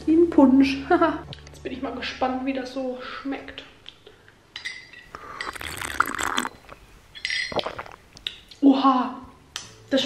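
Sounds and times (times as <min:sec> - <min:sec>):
drink slurped through a straw: 0:05.1 - 0:08.4.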